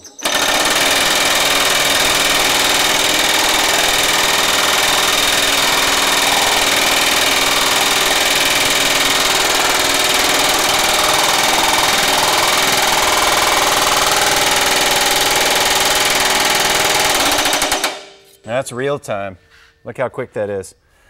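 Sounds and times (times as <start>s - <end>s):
power hammer hammering sheet steel: 0.6s - 18.3s.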